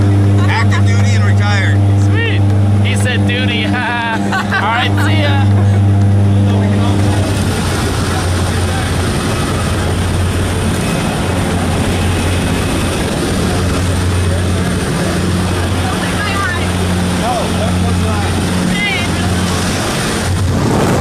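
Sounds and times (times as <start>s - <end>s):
propeller plane engines droning: 0.0s - 21.0s
rush of air noise: 19.2s - 21.0s.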